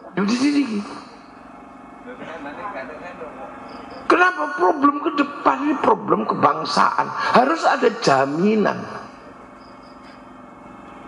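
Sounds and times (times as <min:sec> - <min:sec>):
faint steady tones: 0:00.0 - 0:11.0
low background hum: 0:00.0 - 0:11.0.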